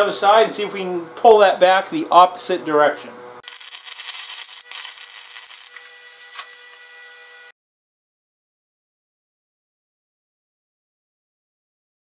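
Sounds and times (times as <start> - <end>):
welding arc crackling: 3.4 - 6.9.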